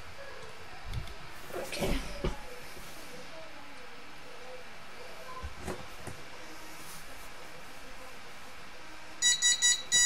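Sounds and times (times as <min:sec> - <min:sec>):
buzzer beeping: 0:09.2 - 0:10.0.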